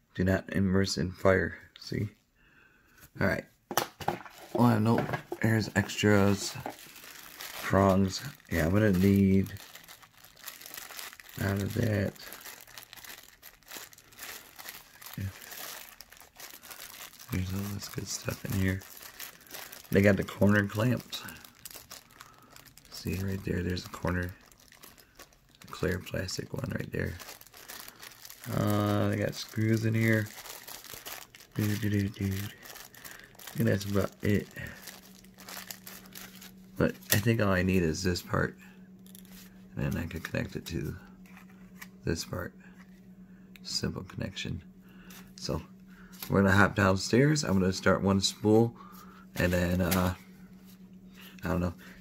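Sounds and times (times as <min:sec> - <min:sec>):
steady low hum: 0:00.0 - 0:52.0
plastic bag crinkling: 0:04.0 - 0:38.1, 0:39.0 - 0:40.7.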